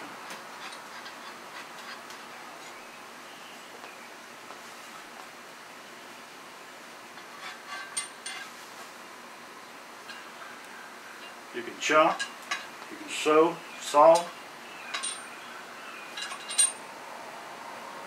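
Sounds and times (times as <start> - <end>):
faint room hiss: 0.0 - 18.0
metallic clicks and clinks: 14.9 - 15.4, 16.2 - 16.8.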